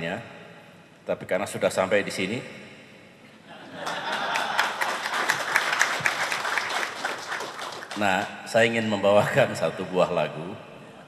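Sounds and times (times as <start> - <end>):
audience applauding: 3.8 - 8.3.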